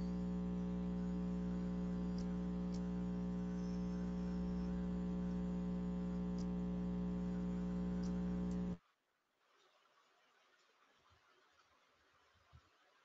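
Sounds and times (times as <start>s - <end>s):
electrical hum: 0.0s - 8.8s.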